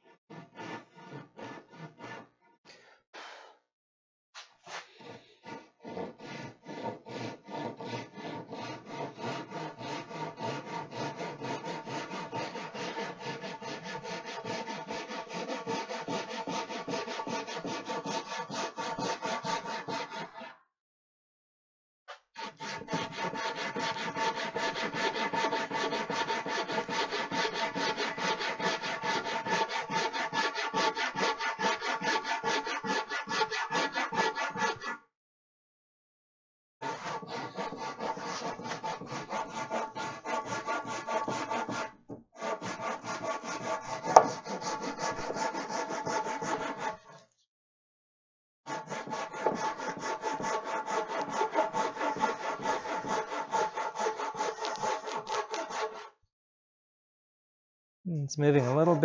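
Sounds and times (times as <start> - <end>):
handsaw ripping wooden board: 43.0 - 45.7, 49.0 - 56.0.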